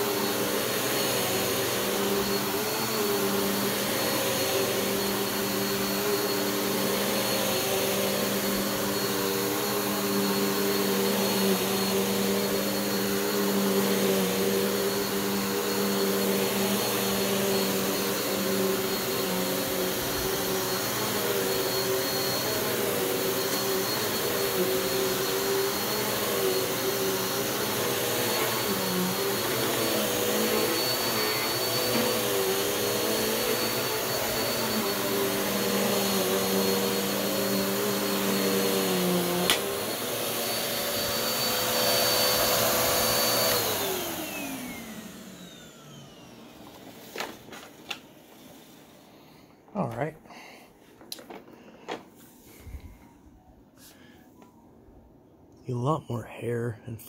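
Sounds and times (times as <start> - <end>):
vacuum motor winding down: 0.0 - 46.7
upright vacuum cleaner whining: 0.0 - 54.6.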